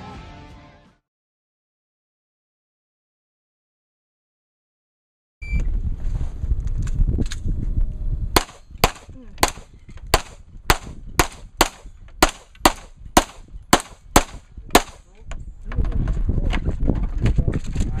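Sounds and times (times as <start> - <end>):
wind rumble on microphone: 5.4 - 18.0
gunshots in quick succession: 8.4 - 15.0.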